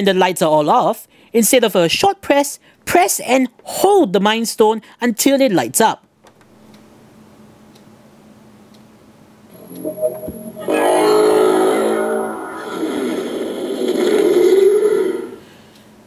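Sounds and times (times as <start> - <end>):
faint hum: 6.0 - 16.0.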